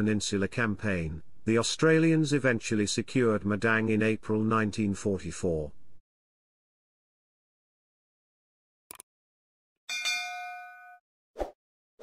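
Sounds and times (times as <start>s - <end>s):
notification bell ding: 9.9s - 11.0s.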